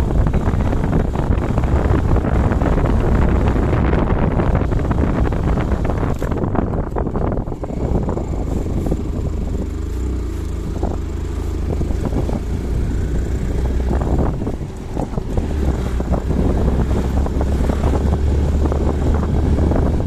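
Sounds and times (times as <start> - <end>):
motorcycle engine: 0.0 - 20.0
wind buffeting microphone: 0.0 - 20.0.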